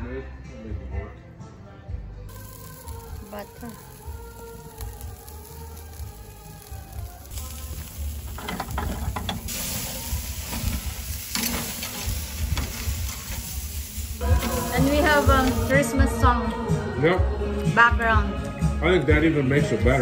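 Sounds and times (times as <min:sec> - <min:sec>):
faint music: 0:00.0 - 0:20.0
steaks sizzling on a grill: 0:02.3 - 0:15.9.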